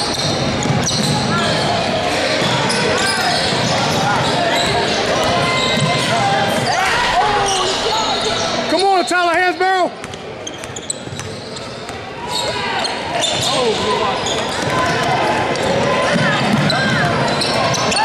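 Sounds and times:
echoing crowd chatter: 0.0s - 18.0s.

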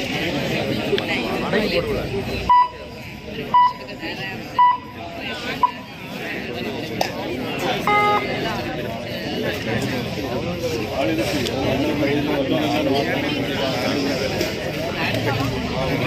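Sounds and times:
crowd chatter: 0.0s - 16.0s
short electronic beeps: 2.5s - 2.9s, 4.6s - 5.0s, 7.9s - 8.4s.

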